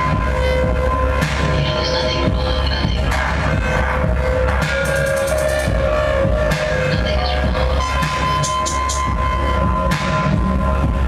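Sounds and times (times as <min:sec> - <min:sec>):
electronic music with heavy bass: 0:00.0 - 0:11.0.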